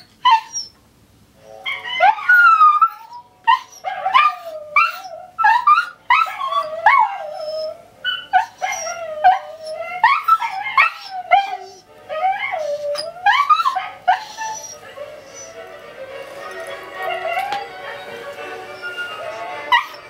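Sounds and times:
dogs howling and yipping: 0.0s - 0.7s, 1.6s - 20.0s.

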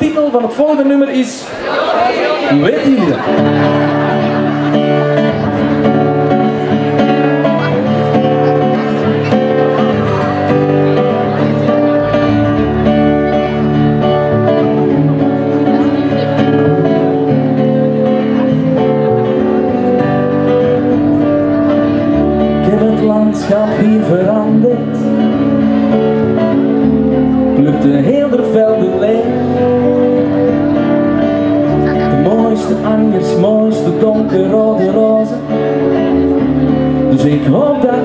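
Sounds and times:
acoustic guitar: 0.0s - 38.0s
keyboard: 1.9s - 38.0s
bass guitar: 2.8s - 38.0s.

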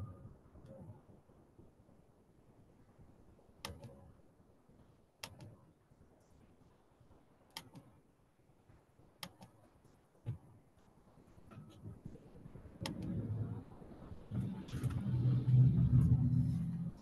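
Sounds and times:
computer mouse clicks: 3.6s - 4.1s, 5.2s - 5.6s, 7.5s - 7.9s, 9.2s - 9.6s, 12.8s - 13.3s.

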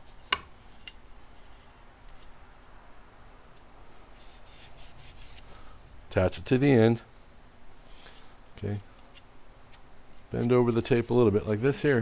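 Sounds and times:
low steady background hum: 0.0s - 12.0s.

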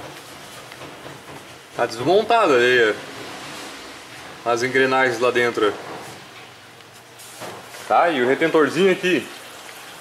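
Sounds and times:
workshop background noise: 0.0s - 10.0s
man talking: 4.4s - 5.8s, 7.9s - 9.4s.

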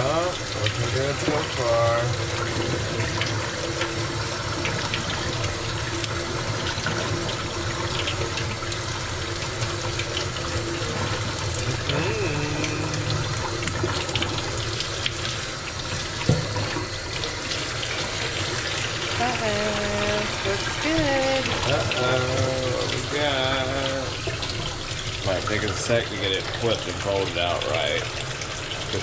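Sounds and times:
faucet running into metal sink: 0.0s - 29.0s.

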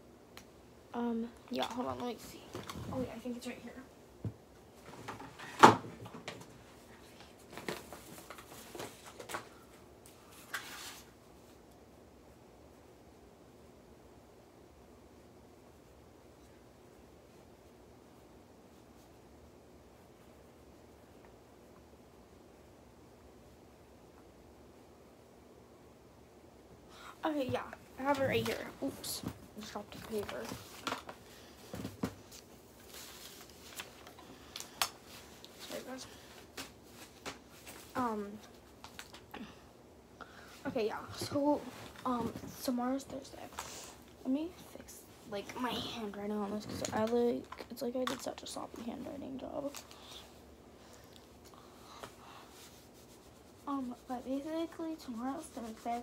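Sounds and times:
rummaging knocks and rustles: 4.8s - 6.6s, 27.4s - 34.2s, 40.7s - 43.4s
paper rustling and crinkling: 7.5s - 11.1s, 28.0s - 39.2s.

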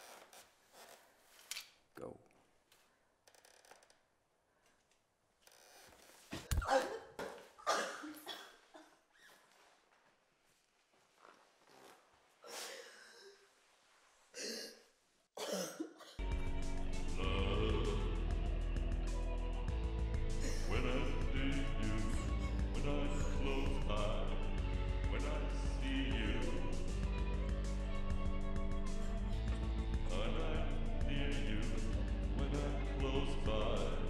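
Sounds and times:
person coughing breathily: 6.7s - 8.9s, 15.4s - 16.2s
faint rustling: 8.6s - 14.3s.

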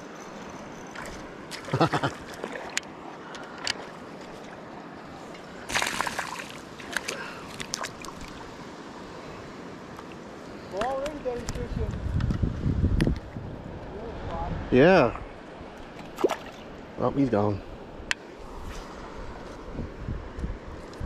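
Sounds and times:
fish splashing at surface: 5.7s - 8.4s.

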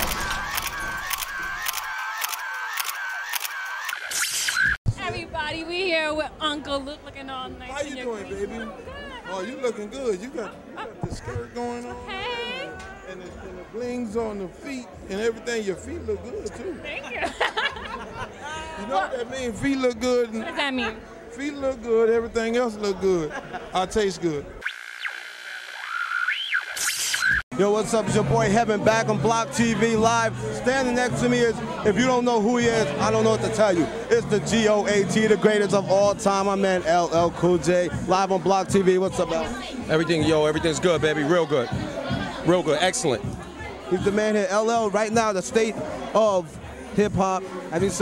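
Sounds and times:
camera shutter clicks: 0.0s - 4.7s
sliding electronic tone: 0.0s - 4.8s, 24.6s - 27.4s
warbling electronic tone: 24.6s - 27.4s.

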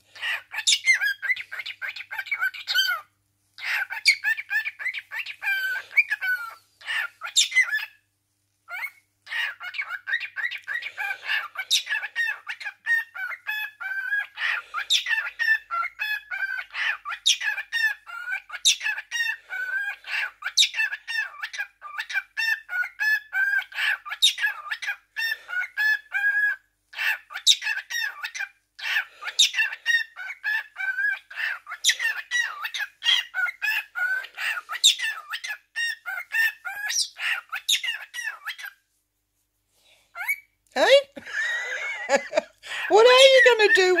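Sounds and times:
cockatiel chattering calls: 0.2s - 7.9s, 8.7s - 38.8s.

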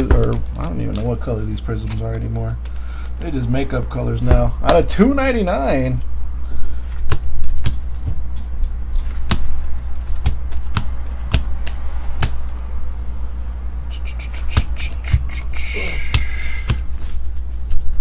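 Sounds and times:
steady low hum: 0.0s - 18.0s
cards snapping while flipped: 1.8s - 3.3s, 10.1s - 12.4s.

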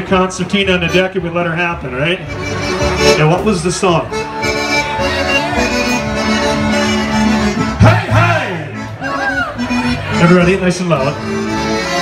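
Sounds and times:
polka band with accordion: 0.0s - 12.0s.

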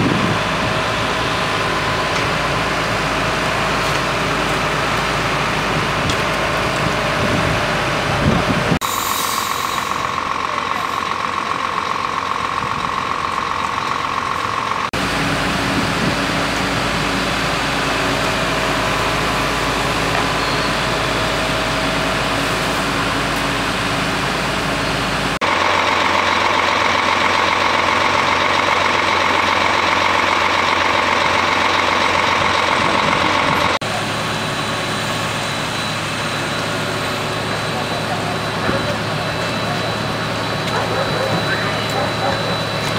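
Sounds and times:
engine running steadily: 0.0s - 42.9s.

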